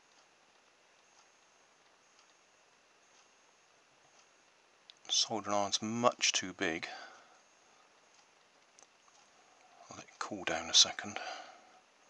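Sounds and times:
faint tick: 0.1s - 2.5s, 3.1s - 3.3s, 4.1s - 5.1s.

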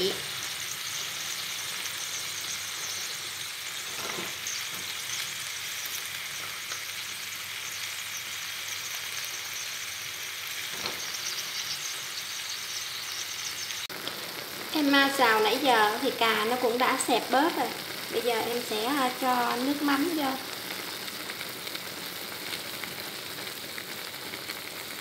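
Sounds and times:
food sizzling in hot oil: 0.0s - 25.0s.

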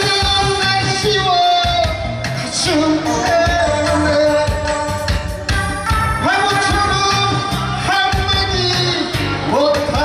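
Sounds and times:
man singing into microphone: 0.0s - 10.0s
pop backing track: 0.0s - 10.0s.

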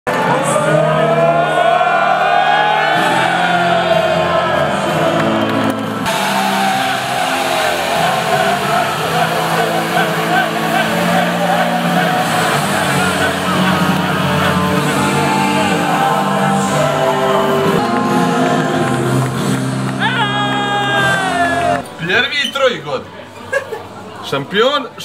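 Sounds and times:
loud music: 0.1s - 21.8s
men shouting and cheering: 0.1s - 21.8s.

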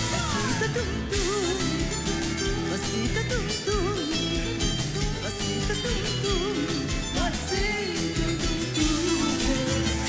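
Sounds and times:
live band music: 0.0s - 10.0s
plucked acoustic guitar: 0.0s - 10.0s.

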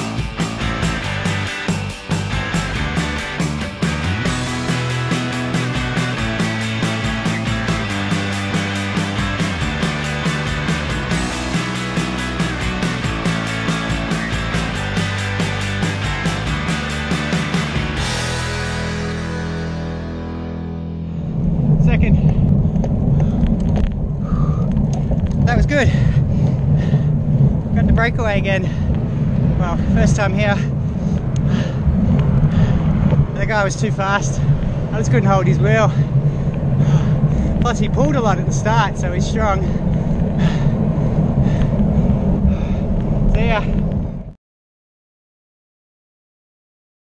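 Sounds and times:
background music: 0.0s - 21.2s
wind buffeting microphone: 21.2s - 44.4s.

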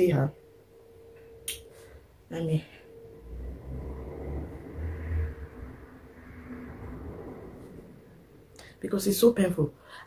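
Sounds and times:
low rumble: 2.6s - 8.7s.

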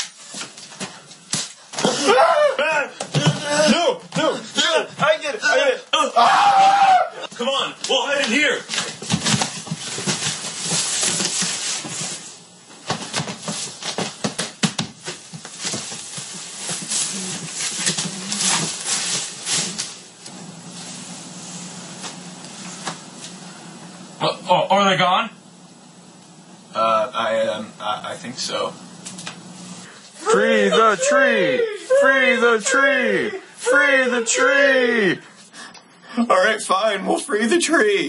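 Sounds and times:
loud wordless yelling: 1.9s - 8.5s, 30.2s - 35.2s.

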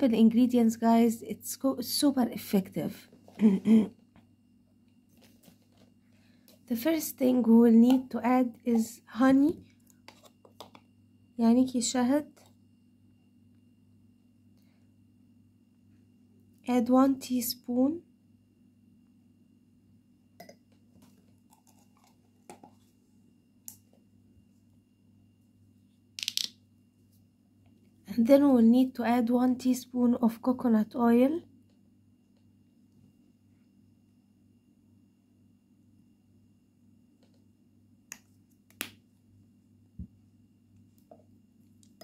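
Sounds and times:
low steady hum: 0.0s - 42.0s.

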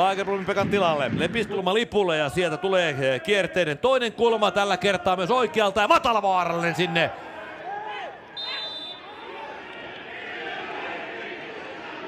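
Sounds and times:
stadium hum: 0.0s - 12.0s
players shouting: 2.3s - 12.0s
referee's whistle blast: 8.4s - 9.2s.

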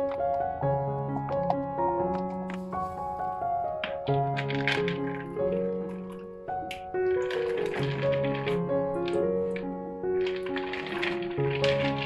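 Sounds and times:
background music: 0.0s - 12.0s
soap cubes clattering into bowl: 4.0s - 9.6s.

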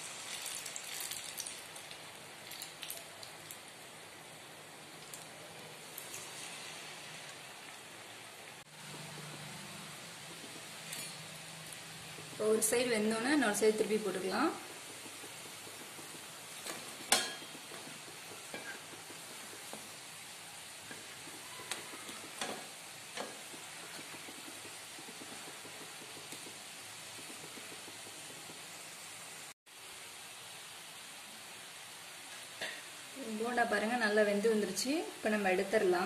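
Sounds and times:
dumplings sizzling in hot oil: 0.0s - 36.0s.

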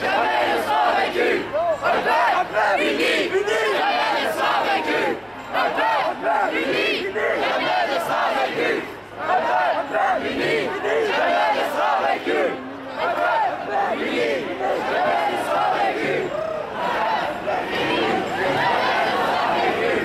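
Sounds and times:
crowd shouting slogans: 0.0s - 20.0s.

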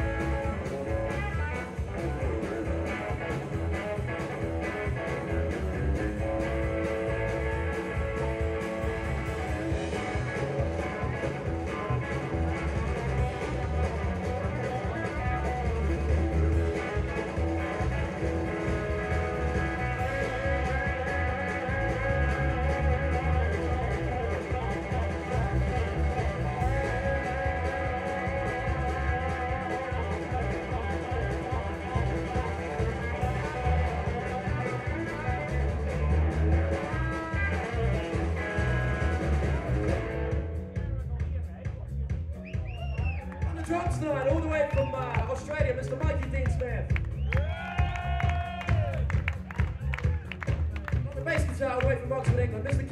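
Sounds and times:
electric guitar: 0.0s - 41.0s
blues-rock band playing: 0.0s - 52.9s
heavy bass line: 0.0s - 52.9s.

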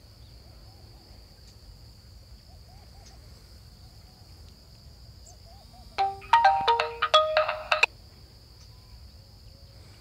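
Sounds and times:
crickets trilling: 0.0s - 10.0s
phone ringtone melody: 6.0s - 7.9s.

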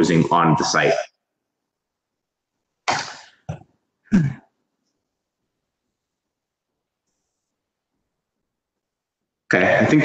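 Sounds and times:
person clearing throat: 4.0s - 4.6s
person coughing: 4.1s - 4.5s.

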